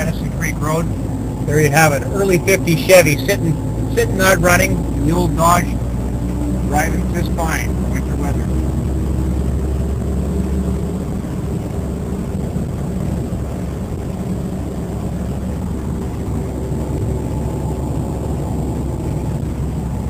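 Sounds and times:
truck engine droning in cab: 0.0s - 20.0s.

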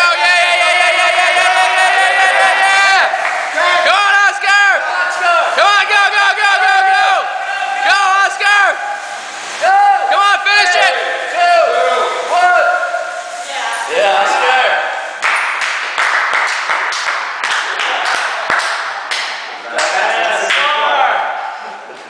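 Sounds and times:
air bike fan whirring: 0.0s - 20.5s.

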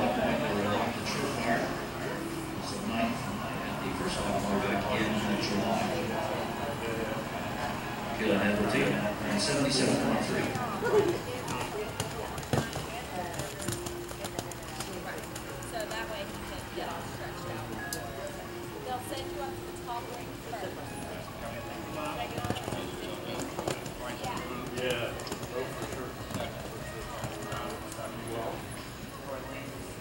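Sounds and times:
steady hum: 0.0s - 27.0s
indistinct voices talking: 0.0s - 30.0s
horse hoofbeats on sand: 11.3s - 15.4s.

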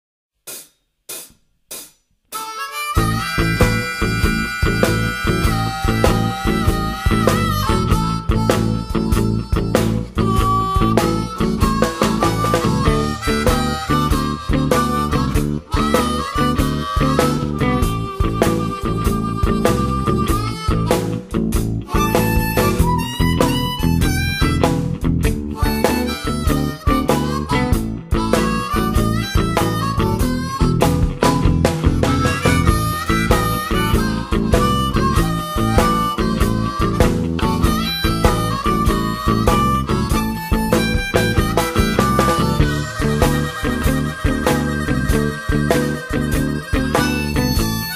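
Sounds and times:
band playing steady beat: 0.4s - 47.9s
harmonica held notes: 2.3s - 47.9s.

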